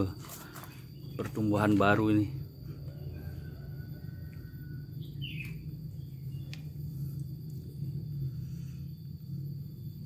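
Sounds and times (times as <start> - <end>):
bird chirp: 0.0 - 10.0
low background hum: 0.0 - 10.0.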